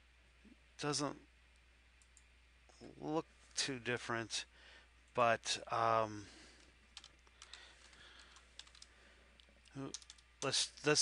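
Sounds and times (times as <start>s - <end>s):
computer mouse clicks: 8.2s - 10.5s
person speaking: 9.6s - 11.0s.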